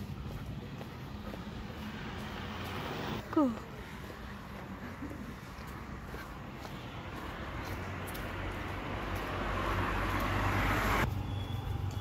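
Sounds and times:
road vehicle approaching: 0:00.0 - 0:12.0.

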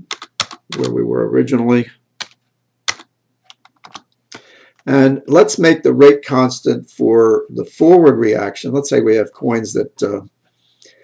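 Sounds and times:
man speaking: 0:00.7 - 0:02.0, 0:04.8 - 0:10.3.

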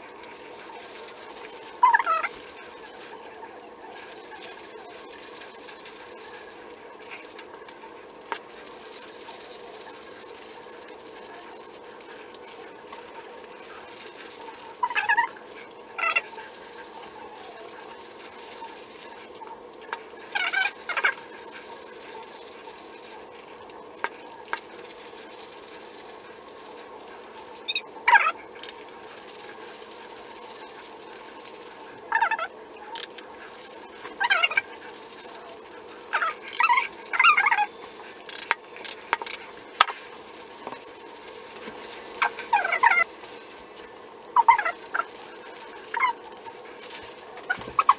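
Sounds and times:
dog barking and yipping: 0:01.6 - 0:02.5.

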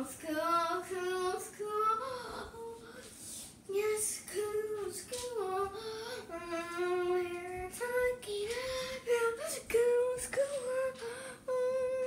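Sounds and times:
child singing wordless tune: 0:00.0 - 0:02.8, 0:03.7 - 0:12.0.

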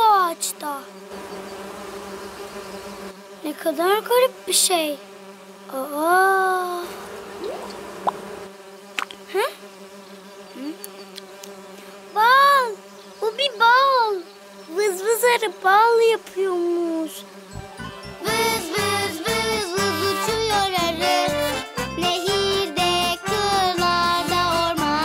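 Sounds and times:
cartoon bees buzzing: 0:00.0 - 0:25.0
sing-song calls: 0:07.2 - 0:09.2, 0:17.0 - 0:21.4
cheerful music: 0:17.5 - 0:25.0.

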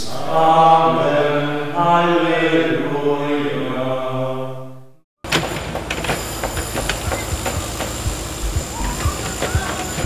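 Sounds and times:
excavator machinery din: 0:05.3 - 0:10.0
metal clanks and knocks: 0:05.3 - 0:10.0
low thumps: 0:06.5 - 0:10.0.

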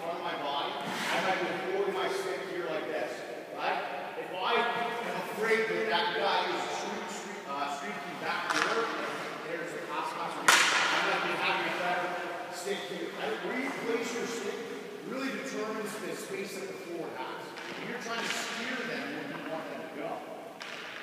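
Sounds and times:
man talking with echo: 0:00.0 - 0:20.5
sharp crack: 0:08.3 - 0:12.2, 0:20.6 - 0:21.0.

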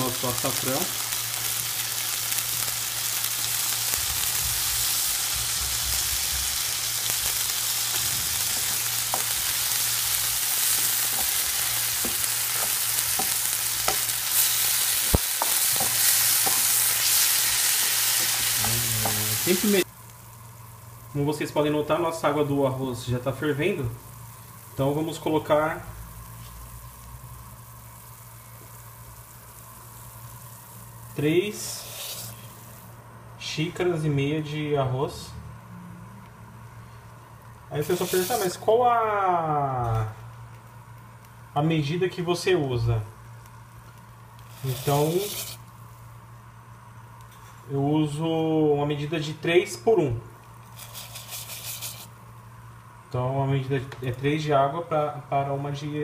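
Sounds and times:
water boiling in pot: 0:00.0 - 0:32.9, 0:40.4 - 0:47.3
gas stove hum: 0:00.0 - 0:56.0.

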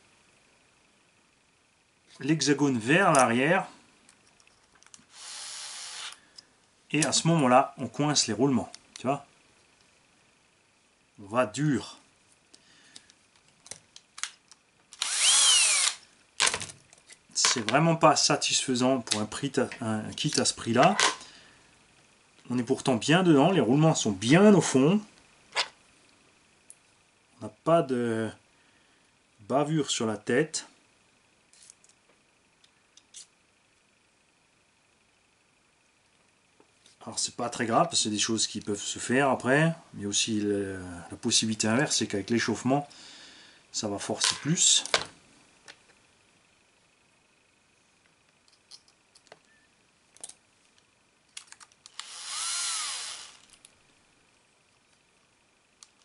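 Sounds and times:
high-pitched hiss of screw tightening: 0:05.1 - 0:06.2
small plastic parts clicking: 0:48.3 - 0:49.5, 0:51.3 - 0:52.1.

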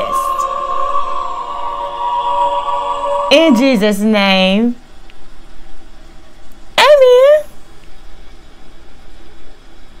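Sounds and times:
low constant hum: 0:00.0 - 0:10.0.

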